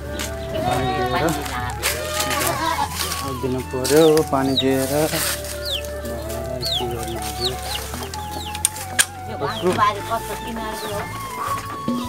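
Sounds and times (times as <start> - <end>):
background music with bass: 0.0 - 12.0
chicks peeping: 0.0 - 12.0.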